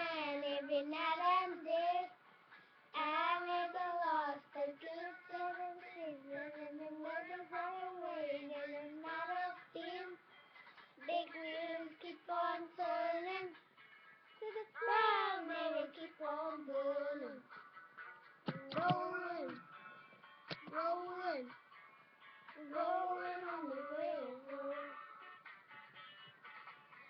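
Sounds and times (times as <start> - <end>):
girls singing unaccompanied: 14.8 - 17.2, 22.6 - 24.9.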